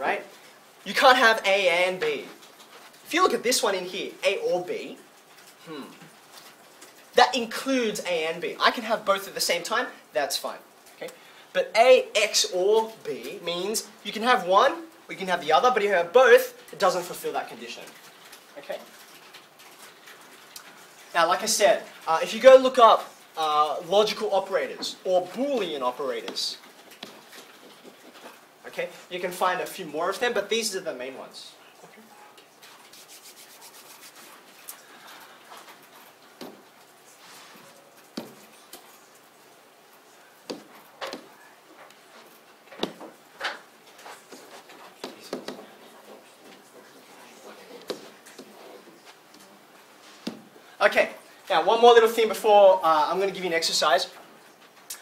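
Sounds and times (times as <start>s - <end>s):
faint steady hiss: 0.0s - 55.0s
man humming hmm: 5.6s - 6.1s
hands rubbing together: 32.5s - 36.2s.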